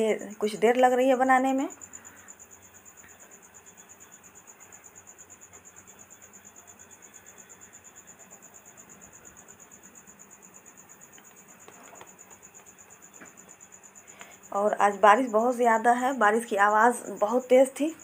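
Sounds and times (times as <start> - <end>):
cricket trilling: 0.0 - 18.0.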